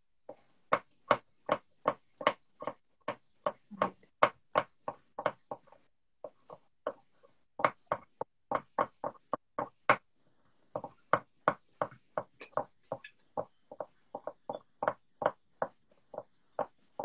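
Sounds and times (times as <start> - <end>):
pens tapping on paper: 0.3 - 10.1, 10.7 - 17.0.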